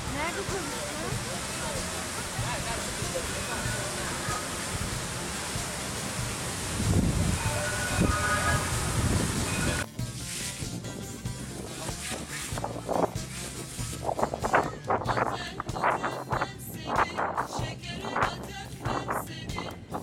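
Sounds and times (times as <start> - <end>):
crowd voices: 0.0 - 6.3
fountain water jets splashing: 0.0 - 16.7
quiet music: 0.0 - 20.0.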